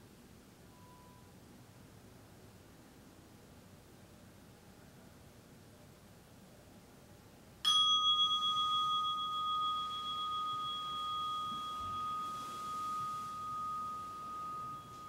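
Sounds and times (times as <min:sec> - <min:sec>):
meditation bell ringing: 0:07.7 - 0:15.0.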